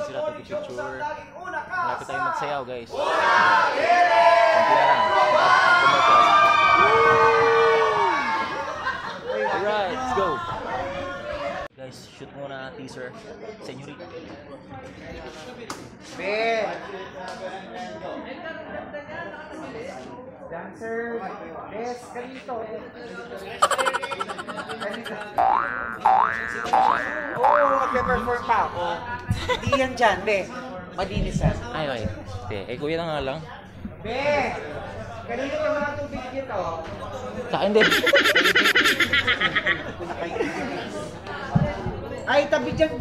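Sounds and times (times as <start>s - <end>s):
group of people cheering: 3.0s - 8.7s
springy boing: 23.6s - 29.0s.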